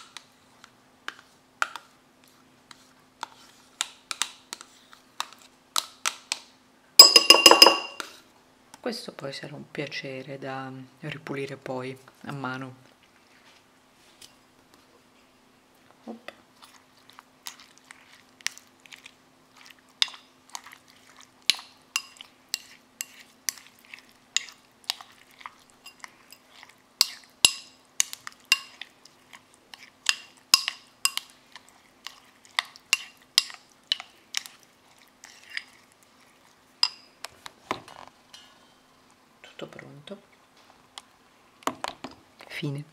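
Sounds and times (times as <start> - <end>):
plastic spoon clinking on bowl: 7.0 - 8.1.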